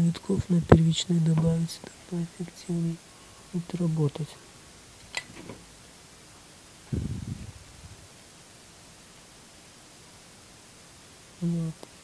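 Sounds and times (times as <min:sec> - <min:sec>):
faint steady hiss: 0:00.0 - 0:12.0
low thump: 0:06.9 - 0:08.1.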